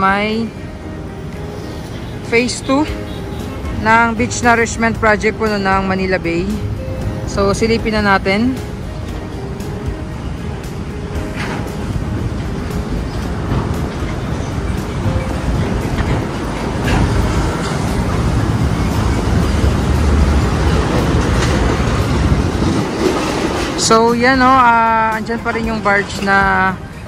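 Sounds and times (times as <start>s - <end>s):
road traffic rumble: 0.0s - 27.0s.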